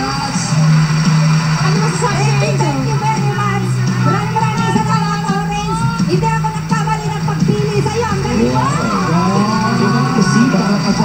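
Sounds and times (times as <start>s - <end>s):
upbeat show music: 0.0s - 11.0s.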